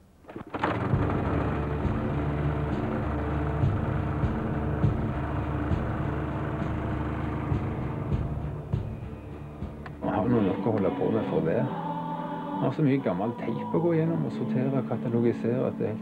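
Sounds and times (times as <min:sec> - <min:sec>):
generator running: 0:00.2 - 0:11.0.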